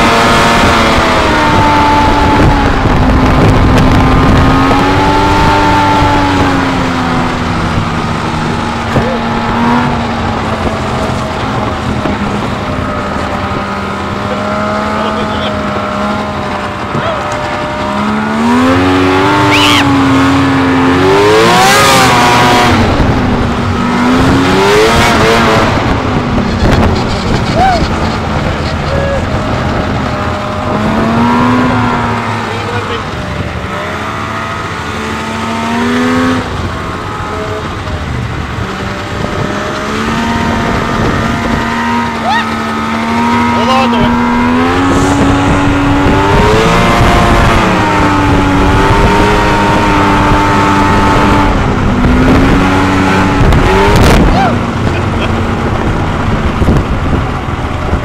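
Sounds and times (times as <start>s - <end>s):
snowmobile engine revving: 0.0s - 58.0s.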